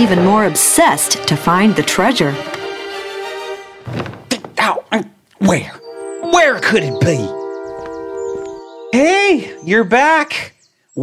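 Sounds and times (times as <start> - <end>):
soft background music: 0.0 - 3.8, 5.5 - 10.5
short thunk: 3.8 - 4.6.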